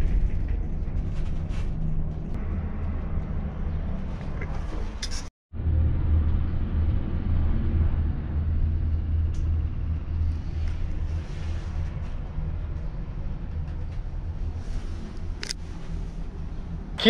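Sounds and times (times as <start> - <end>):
cable car gondola rumble: 0.0 - 17.0.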